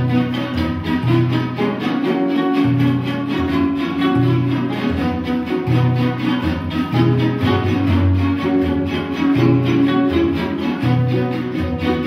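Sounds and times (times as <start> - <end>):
strummed string instruments: 0.0 - 12.0.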